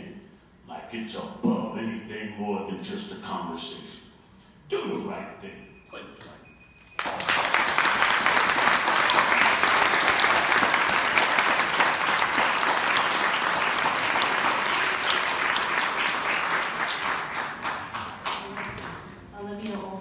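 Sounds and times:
audience applauding: 7.0s - 19.2s.

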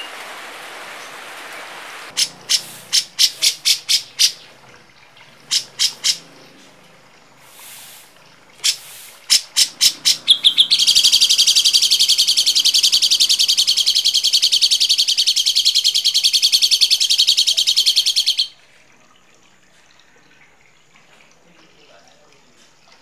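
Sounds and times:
songbird rattling trill call: 2.1s - 4.5s, 5.4s - 6.2s, 8.6s - 18.6s.

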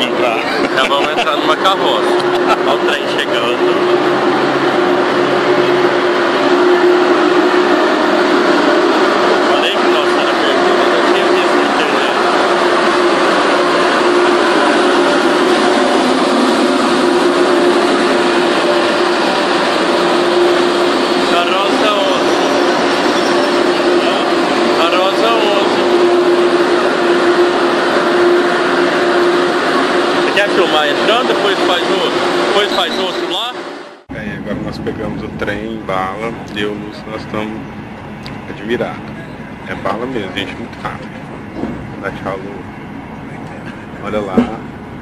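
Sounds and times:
high-speed train rushing in: 0.0s - 45.0s.

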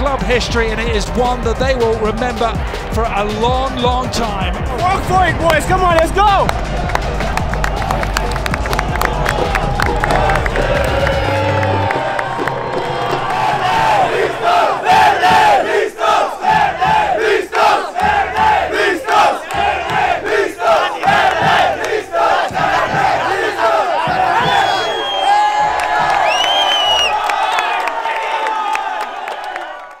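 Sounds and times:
low background music: 0.0s - 14.6s
crowd chanting: 4.6s - 29.6s.

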